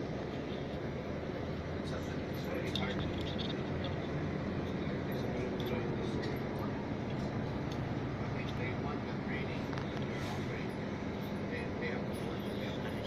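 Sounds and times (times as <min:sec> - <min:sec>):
bus engine and road rumble: 0:00.0 - 0:13.0.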